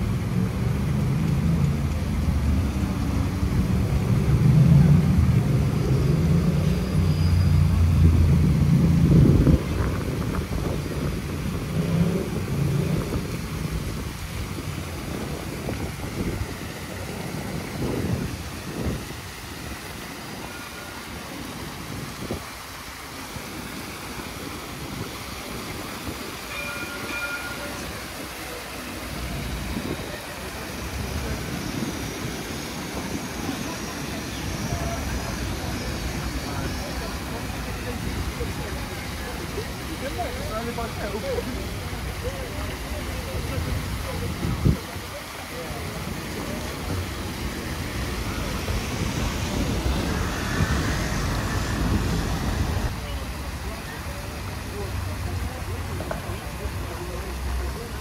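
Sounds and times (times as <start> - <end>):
fountain water splashing: 0.0 - 58.0.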